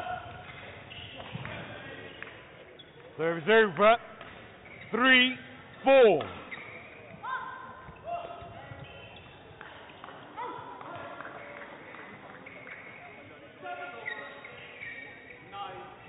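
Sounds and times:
shoes squeaking on hall floor: 0.0s - 16.0s.

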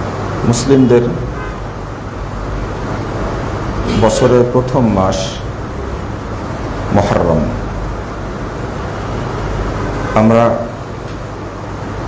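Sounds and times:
man vocal sound: 3.8s - 4.4s.

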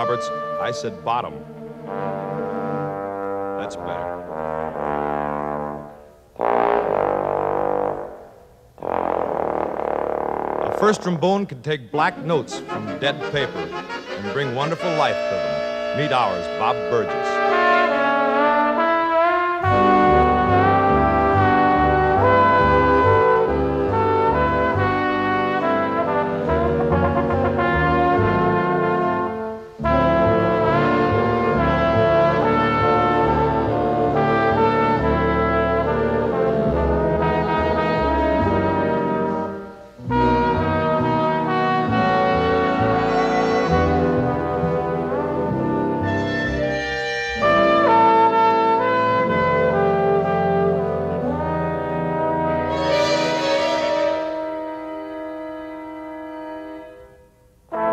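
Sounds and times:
trombone solo: 0.0s - 11.4s, 12.0s - 57.9s
brass section chords: 0.0s - 57.9s.

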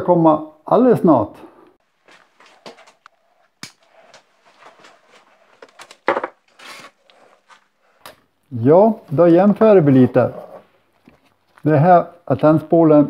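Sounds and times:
objects being handled: 1.8s - 8.3s, 10.2s - 11.7s.

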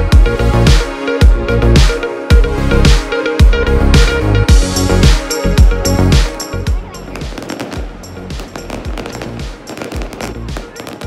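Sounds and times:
music playing: 0.0s - 11.0s
fireworks crackling and popping: 7.1s - 11.0s.

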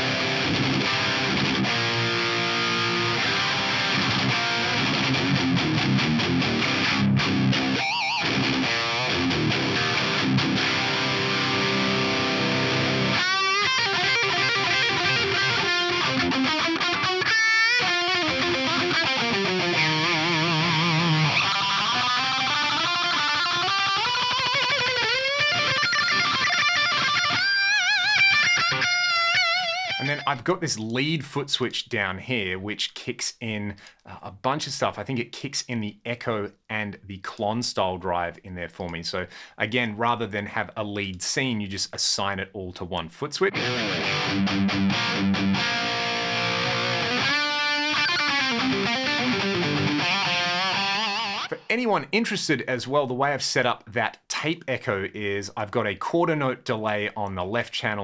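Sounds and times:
distorted electric guitar riffs: 0.0s - 30.4s, 43.4s - 52.4s
guitar lead with string bends: 0.0s - 30.4s, 43.4s - 51.8s.

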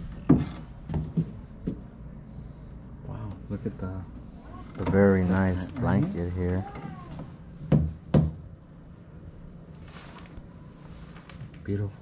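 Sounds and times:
sharp knocks: 6.8s - 8.4s.

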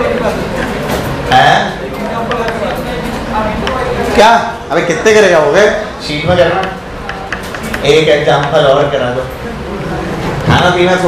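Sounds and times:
voices in a classroom: 0.0s - 11.0s.

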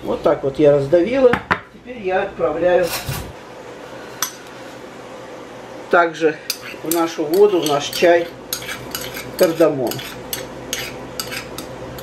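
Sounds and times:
spoon scraping in ceramic mortar: 6.5s - 12.0s.

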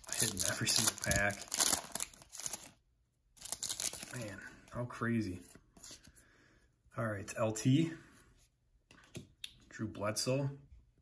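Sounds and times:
plastic wrapper crinkling: 0.0s - 2.8s, 3.4s - 4.4s.

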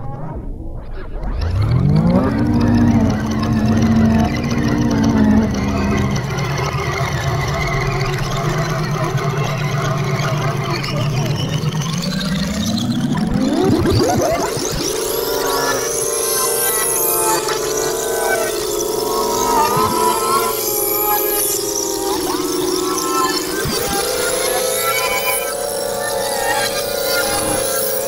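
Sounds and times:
pitch-bent audio sample: 0.0s - 28.0s.

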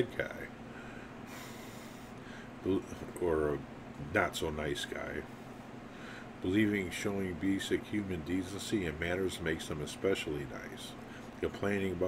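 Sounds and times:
low room hum: 0.0s - 12.0s
man breathing: 0.6s - 2.6s, 5.4s - 6.4s, 11.0s - 11.4s.

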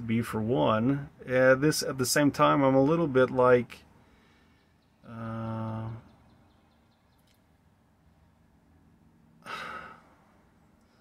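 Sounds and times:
person sighing: 9.4s - 10.2s.

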